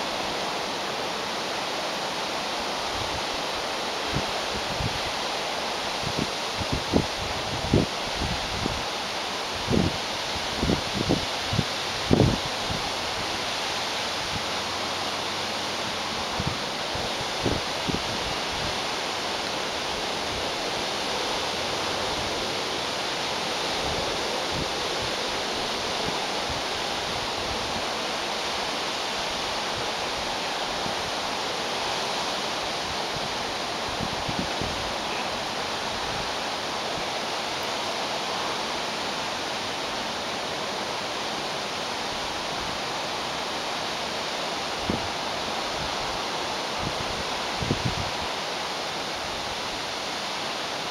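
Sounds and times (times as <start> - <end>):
waterfall rushing: 0.0 - 50.9.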